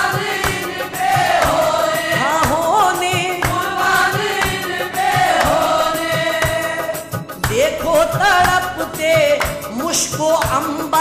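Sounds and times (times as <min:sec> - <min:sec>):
group devotional singing: 0:00.0 - 0:11.0
percussion strokes: 0:00.0 - 0:11.0.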